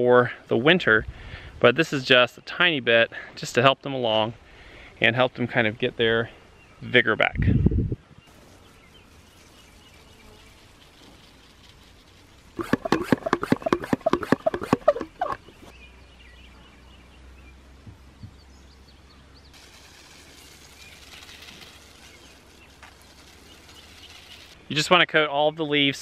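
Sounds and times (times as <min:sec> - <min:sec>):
faint hiss of spray: 0:08.3 - 0:12.7, 0:19.5 - 0:24.6
hand pump strokes: 0:10.4 - 0:15.7, 0:19.6 - 0:24.6.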